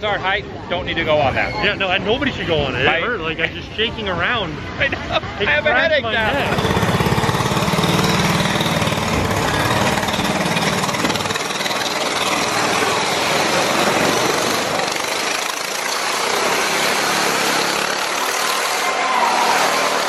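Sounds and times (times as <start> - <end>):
go-kart engine running loud: 6.0 - 20.0
deeper engine hum: 6.2 - 18.2.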